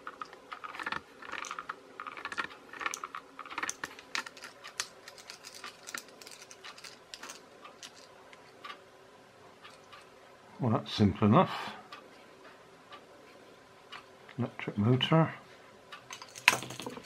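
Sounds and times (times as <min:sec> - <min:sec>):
plastic parts clicking and tapping: 0:00.0 - 0:08.8.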